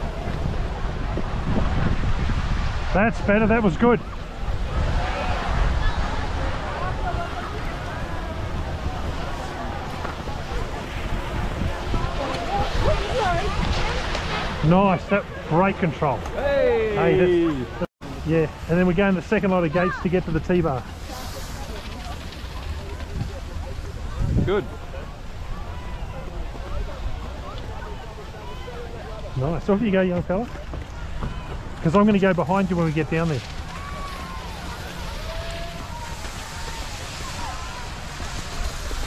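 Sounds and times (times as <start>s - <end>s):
wind rumbling on microphone: 0.0s - 15.5s, 19.9s - 39.0s
distant voices: 0.0s - 39.0s
skis sliding on snow: 0.0s - 39.0s
skis hissing over snow: 18.1s - 25.1s, 31.8s - 39.0s.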